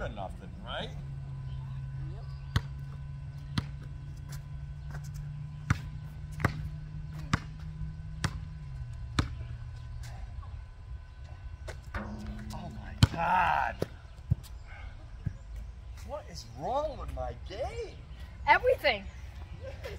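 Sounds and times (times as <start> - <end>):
basketball bouncing on asphalt: 2.3 - 10.0, 12.0 - 14.5.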